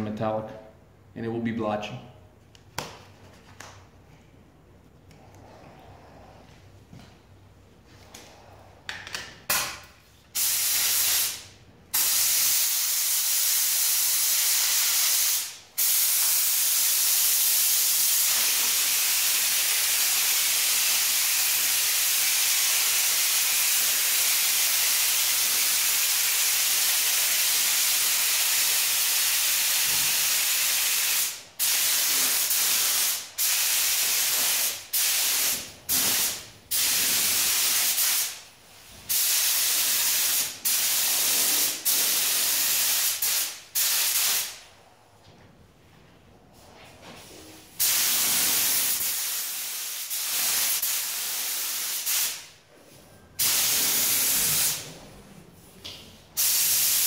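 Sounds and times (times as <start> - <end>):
paint spray gun hissing: 47.8 - 52.5, 56.4 - 57.0.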